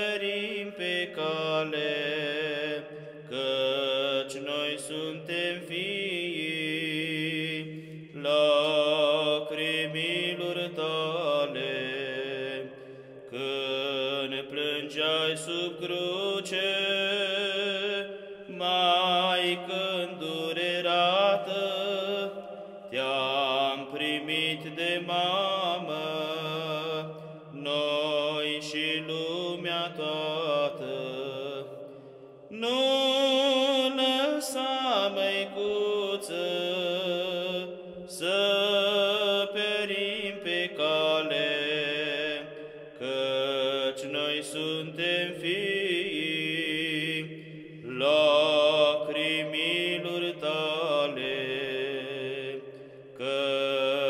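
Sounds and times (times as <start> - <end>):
held vocal drone: 0.0 - 54.0
breaths: 2.8 - 3.3, 7.7 - 8.2, 12.6 - 13.4, 22.4 - 22.9, 27.1 - 27.5, 31.7 - 32.5, 42.5 - 43.0, 52.6 - 53.2.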